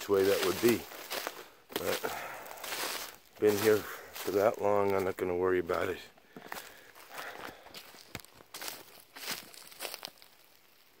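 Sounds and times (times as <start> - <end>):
footsteps crunching through leaves: 0.0 - 11.0.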